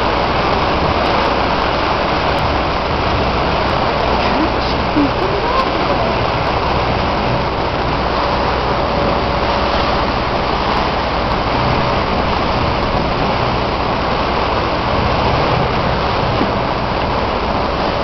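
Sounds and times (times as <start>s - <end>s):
boat engine humming: 0.0s - 18.0s
wind and water rushing: 0.0s - 18.0s.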